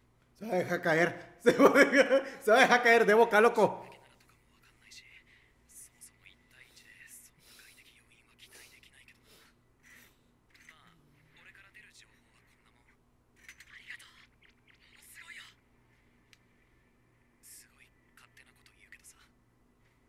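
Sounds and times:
person whispering: 0:04.8 - 0:09.5.

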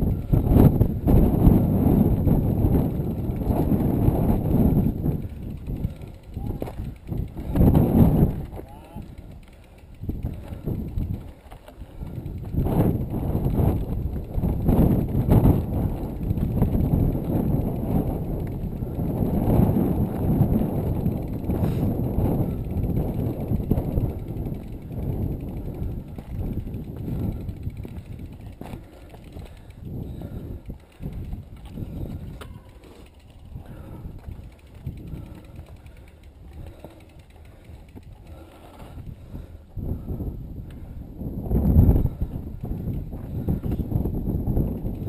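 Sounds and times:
bike clicking and rattling: 0:00.0 - 0:45.0
wind buffeting microphone: 0:00.0 - 0:45.0.

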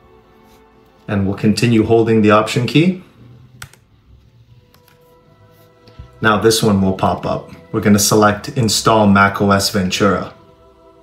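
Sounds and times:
faint background music: 0:00.0 - 0:11.0
keyboard keys clicking: 0:03.6 - 0:03.8.

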